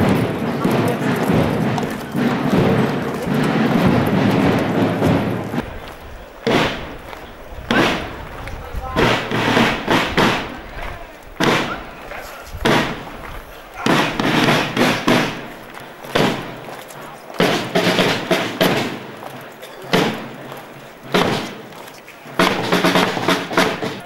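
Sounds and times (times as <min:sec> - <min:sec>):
crowd voices: 0:00.0 - 0:24.0
marching snare drums: 0:00.0 - 0:24.0.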